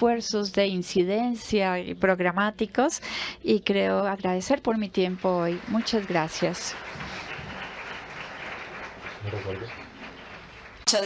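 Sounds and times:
audience applauding: 0:05.0 - 0:11.0.

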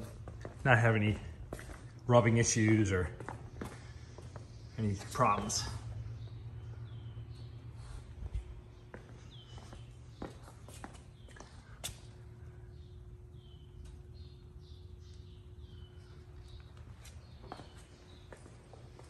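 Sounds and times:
footsteps on concrete: 0:00.0 - 0:06.3, 0:07.4 - 0:12.3, 0:16.4 - 0:19.0
low steady hum: 0:00.0 - 0:19.0
bird chirping: 0:03.9 - 0:19.0.

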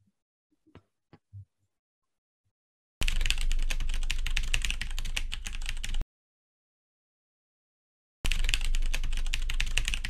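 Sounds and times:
computer keyboard typing: 0:03.0 - 0:06.0, 0:08.3 - 0:10.0.

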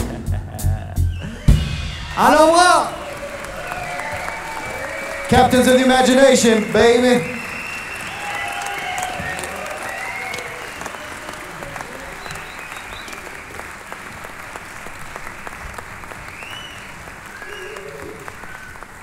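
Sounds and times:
audience applauding and cheering: 0:01.0 - 0:19.0
shouts and whoops: 0:02.2 - 0:12.5.

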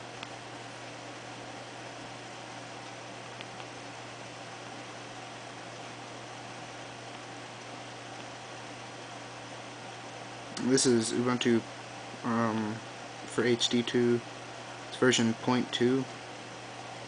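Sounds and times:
constant low hum: 0:00.0 - 0:17.0.

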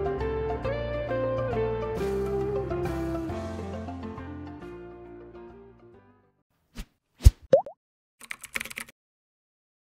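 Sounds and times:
keyboard typing clicks: 0:08.2 - 0:08.9.

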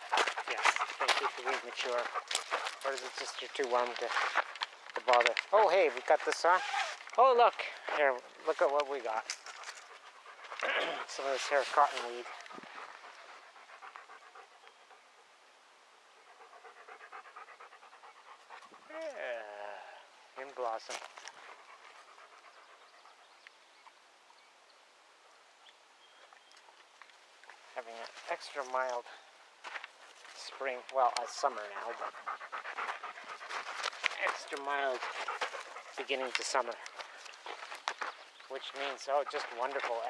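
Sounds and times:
dog panting: 0:00.0 - 0:06.4, 0:07.6 - 0:15.4, 0:16.1 - 0:18.9, 0:21.1 - 0:23.4, 0:30.0 - 0:40.0.

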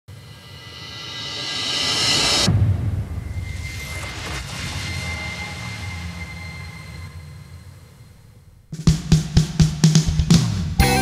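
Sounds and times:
low rumbling drone: 0:00.2 - 0:08.8.

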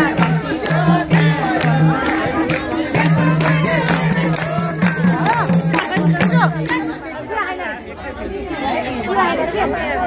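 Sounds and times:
hand claps: 0:00.0 - 0:06.9
folk singing: 0:00.0 - 0:07.0
madal drumming: 0:00.0 - 0:07.0
people chattering: 0:00.0 - 0:10.0.

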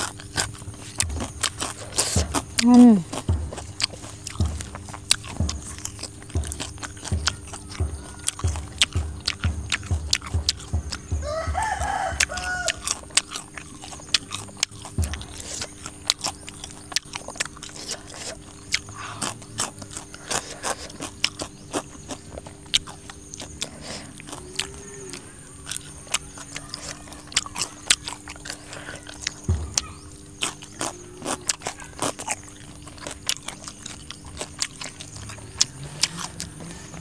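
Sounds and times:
chewing food with wet crunches: 0:00.0 - 0:37.0
chicken calling: 0:00.0 - 0:37.0.

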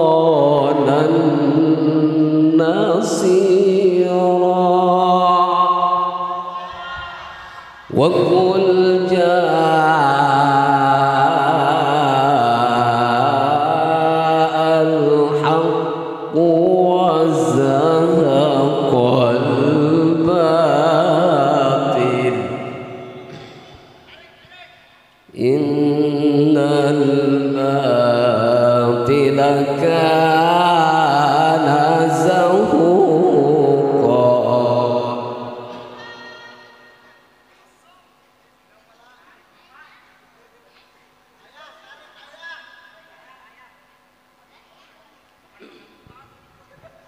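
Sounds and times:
man reciting through a microphone: 0:00.0 - 0:06.6, 0:07.9 - 0:36.0.

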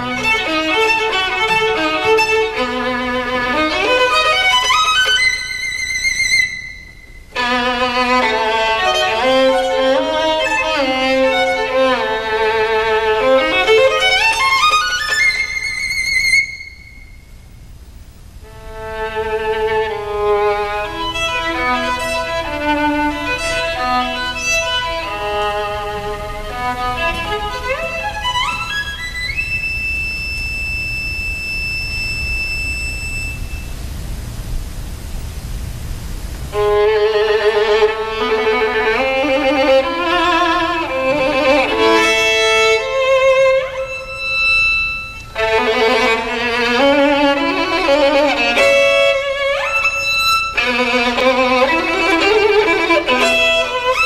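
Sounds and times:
violin playing classical music: 0:00.0 - 0:06.7, 0:07.3 - 0:16.7, 0:18.4 - 0:29.7, 0:36.5 - 0:54.0.

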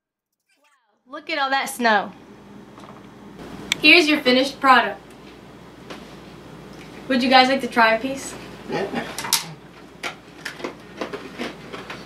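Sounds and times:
crunching hard gingerbread: 0:10.1 - 0:12.0.

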